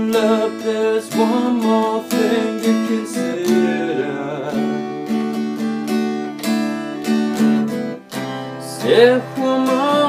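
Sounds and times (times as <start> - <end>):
acoustic guitar strumming: 0.0 - 10.0.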